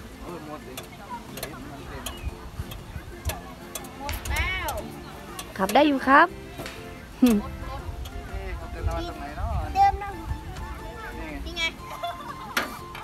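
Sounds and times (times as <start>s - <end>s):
music: 0.0s - 13.0s
voices of people and children: 0.0s - 13.0s.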